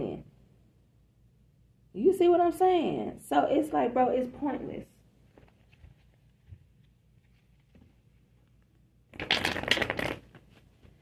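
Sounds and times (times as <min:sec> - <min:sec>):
cards being shuffled: 0:05.3 - 0:11.0.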